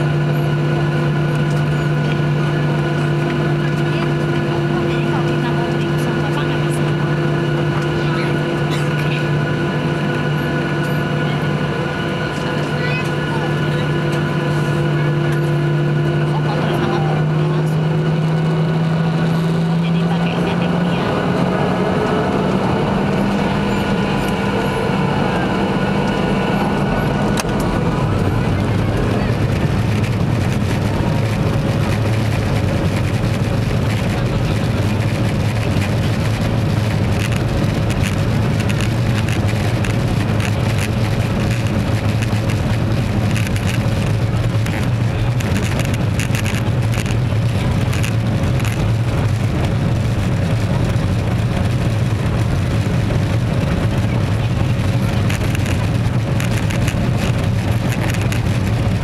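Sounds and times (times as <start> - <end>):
takeoff roll rumble: 0.0 - 59.0.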